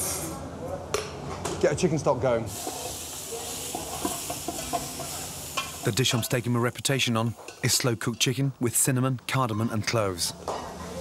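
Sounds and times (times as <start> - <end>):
chicken sizzling in a pot: 2.5 - 7.1.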